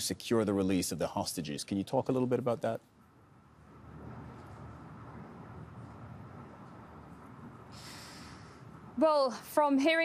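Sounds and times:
faint background hiss: 0.0 - 10.0
person drawing a breath: 7.7 - 8.7.

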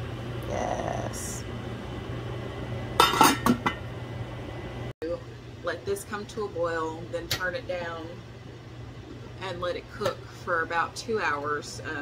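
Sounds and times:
pot lid clinking and rattling: 3.0 - 3.8.

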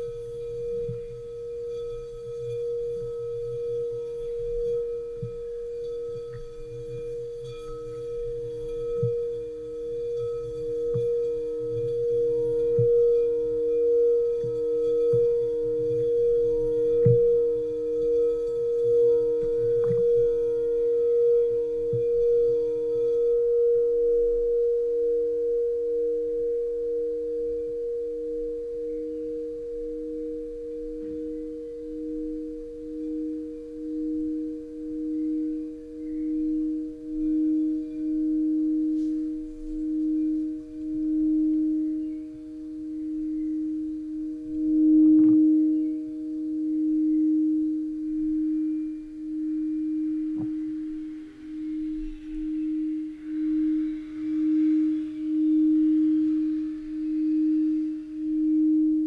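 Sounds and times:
mallet rubbing bowl rim: 0.0 - 59.0
singing bowls ringing: 0.0 - 59.0.

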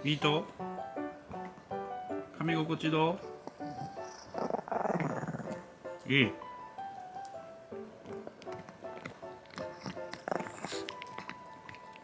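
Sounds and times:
small dog growling: 3.4 - 5.7, 9.4 - 11.9.

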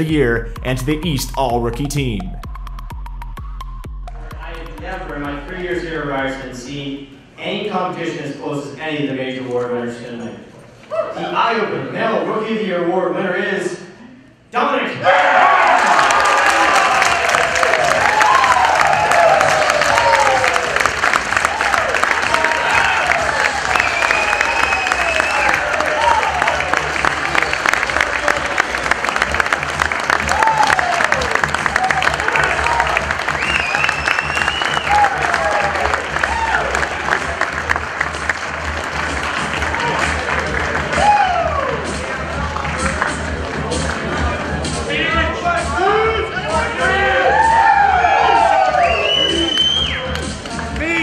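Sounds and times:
audience clapping: 15.7 - 44.8, 48.9 - 51.0
shouts and whistles: 22.7 - 26.3, 33.4 - 35.6, 47.2 - 50.1.

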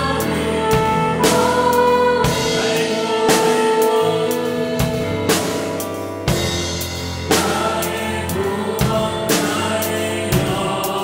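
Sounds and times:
flugelhorn melody: 0.0 - 6.0
drum kit: 0.0 - 11.0
keyboard: 0.0 - 11.0.

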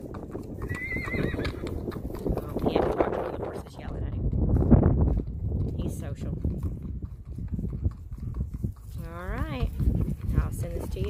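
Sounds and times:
horse hoofbeats on gravel: 0.0 - 11.0.

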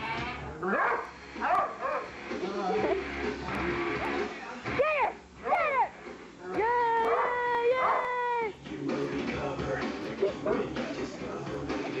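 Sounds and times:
dog barking: 0.7 - 2.1, 7.1 - 8.1.

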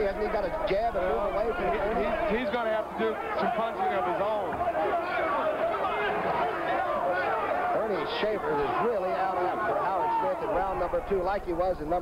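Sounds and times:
man commentating: 0.0 - 4.6, 7.7 - 12.0
faint crowd noise: 0.0 - 12.0.

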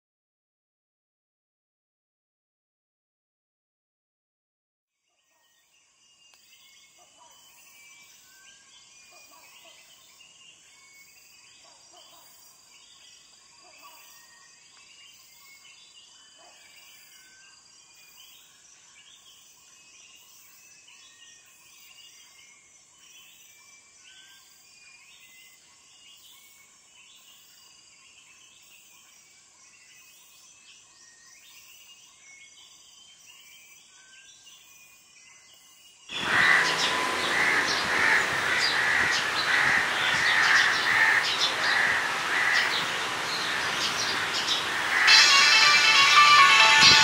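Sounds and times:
harsh bird calls chorus: 36.1 - 47.0.

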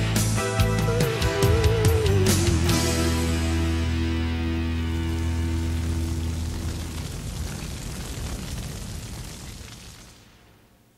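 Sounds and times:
country band final chord: 0.0 - 6.4
fire crackling: 0.9 - 10.9.

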